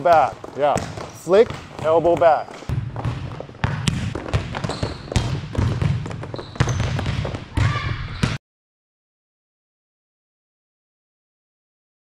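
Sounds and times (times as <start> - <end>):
volleyballs hit and bouncing: 0.0 - 8.4.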